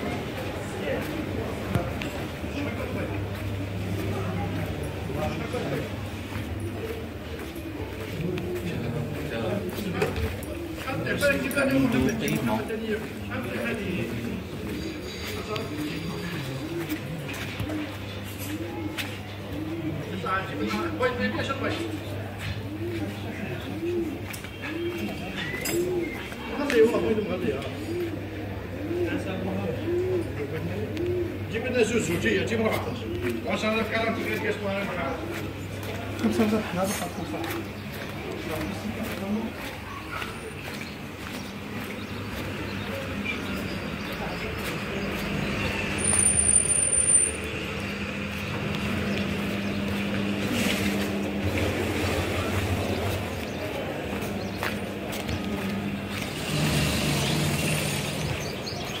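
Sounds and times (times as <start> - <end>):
pigeon cooing: 0.0 - 58.9
vehicle engine running: 40.4 - 59.0.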